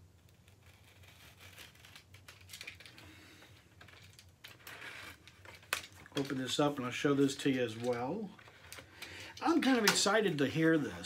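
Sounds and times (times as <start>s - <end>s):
plastic wrap crinkling and tearing: 0.0s - 10.3s.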